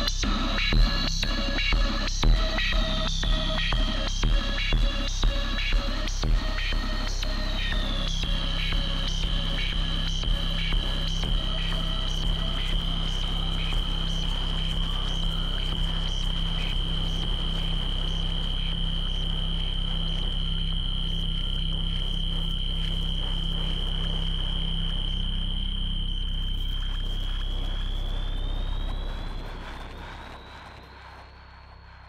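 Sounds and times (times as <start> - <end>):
high-pitched whine: 0.0 - 32.0
low droning hum and hiss: 0.0 - 32.0.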